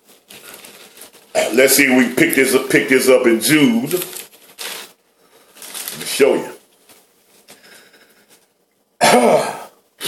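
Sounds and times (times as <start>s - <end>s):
thin pages being turned: 0.0s - 2.6s, 3.3s - 8.5s
man clearing his throat: 9.0s - 9.8s.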